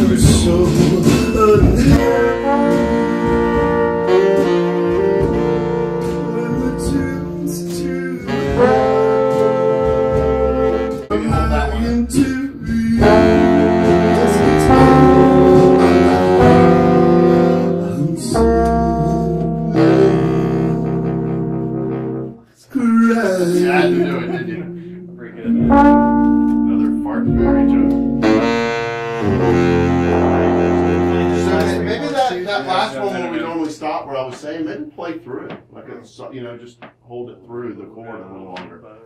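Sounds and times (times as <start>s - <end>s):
horn section playing chords: 0.0s - 22.5s, 23.1s - 33.6s
acoustic guitar strumming: 23.5s - 32.2s.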